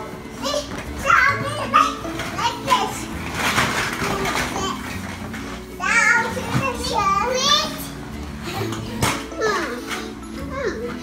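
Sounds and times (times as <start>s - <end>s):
toddlers calling and babbling: 0.0s - 11.0s.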